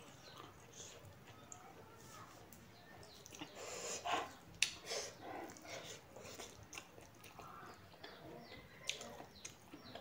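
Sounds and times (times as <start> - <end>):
chewing and lip smacking: 3.0 - 3.9, 4.5 - 10.0.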